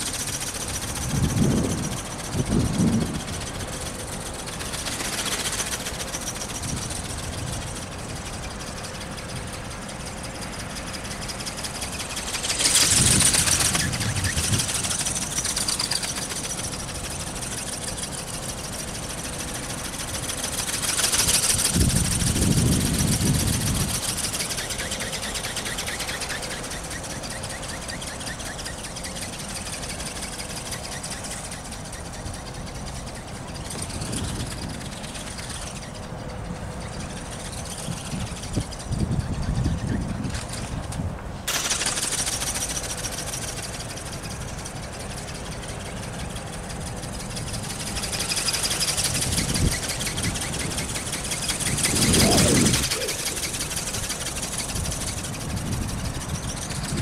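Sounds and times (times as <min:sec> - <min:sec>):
wind gusts on microphone: 0:00.6 - 0:04.9, 0:11.6 - 0:15.7, 0:21.2 - 0:24.6, 0:32.2 - 0:41.5, 0:46.1 - 0:57.0
electric motor whirring: 0:41.5 - 0:57.0.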